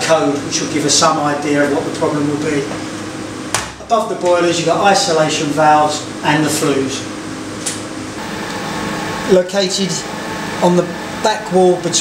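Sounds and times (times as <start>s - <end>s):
machinery and ventilation hum: 0.0s - 12.0s.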